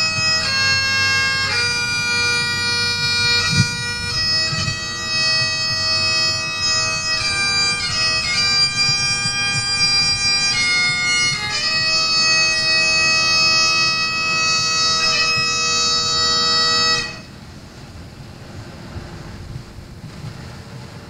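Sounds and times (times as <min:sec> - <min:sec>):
bagpipes playing slow tune: 0:00.0 - 0:17.5.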